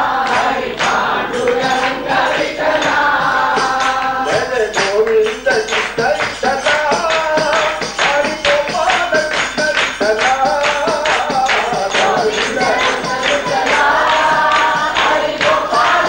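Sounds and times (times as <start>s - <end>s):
fast percussion beat: 0.0s - 16.0s
person singing: 0.9s - 16.0s.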